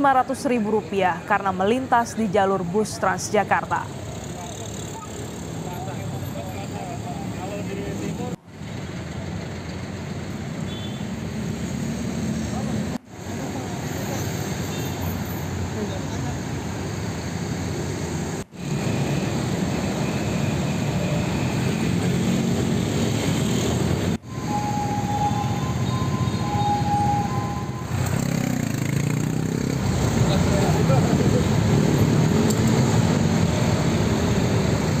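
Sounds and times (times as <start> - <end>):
people talking: 0.0 - 8.4, 30.3 - 31.6
traffic noise: 0.0 - 35.0
steady high tone: 24.2 - 28.7.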